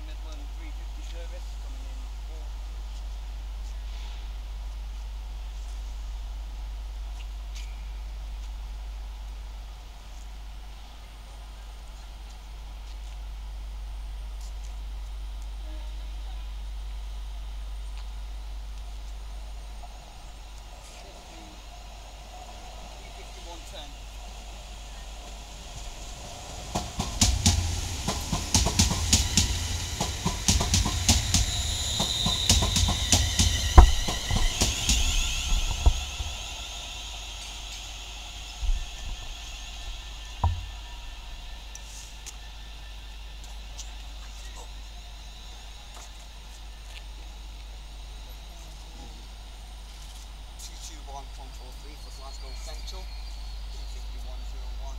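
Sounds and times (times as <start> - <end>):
train running past: 0.0 - 54.9
high squeal: 19.7 - 46.9, 51.2 - 54.9.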